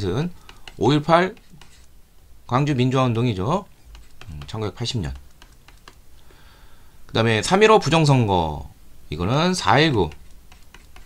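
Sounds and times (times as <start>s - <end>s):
stylus tapping on a tablet: 0.4s - 1.9s, 3.9s - 6.0s, 10.0s - 11.0s.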